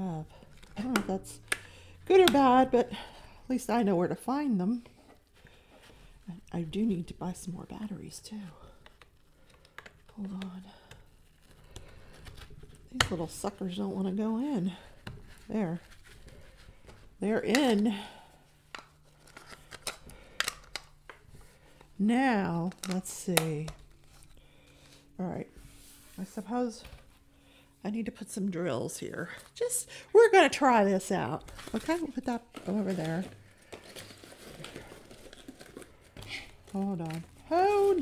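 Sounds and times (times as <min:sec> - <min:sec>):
plastic packaging crinkling: 0:31.3 - 0:38.0.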